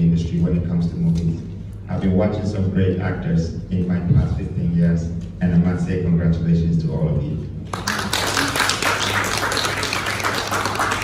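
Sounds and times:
audience applauding: 0:07.7 - 0:11.0.

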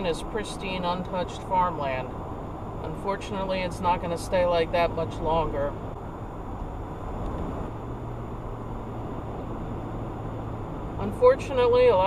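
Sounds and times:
car road noise from cabin: 0:00.0 - 0:12.0.

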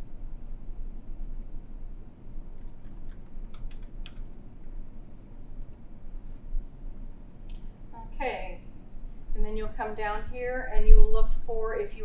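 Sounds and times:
keyboard keys tapping: 0:02.6 - 0:04.3.

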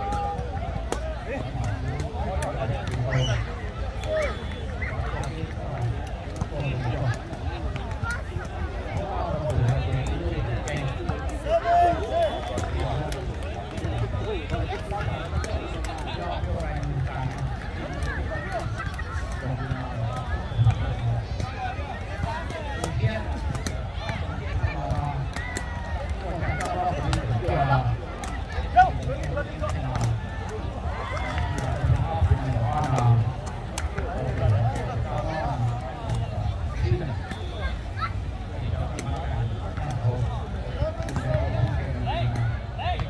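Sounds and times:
crowd chatter: 0:00.0 - 0:43.0
people talking and calling out: 0:00.0 - 0:43.0.

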